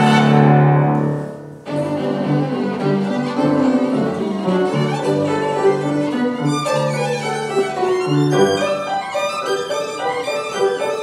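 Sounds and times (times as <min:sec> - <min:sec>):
piano accompaniment: 0:00.0 - 0:11.0
violin playing: 0:00.0 - 0:11.0.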